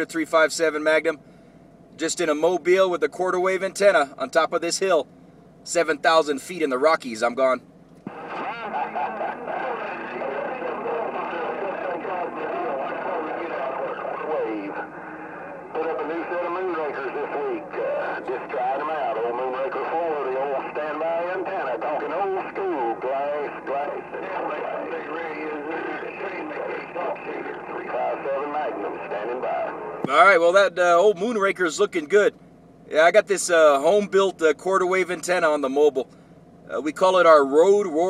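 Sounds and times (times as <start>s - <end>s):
radio static: 8.0s - 31.6s
thin voice over radio speaker: 8.1s - 30.6s.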